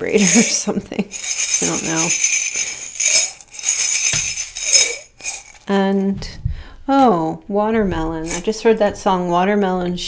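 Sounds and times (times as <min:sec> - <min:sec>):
metal charms rattling in ceramic mug: 0:00.2 - 0:05.7.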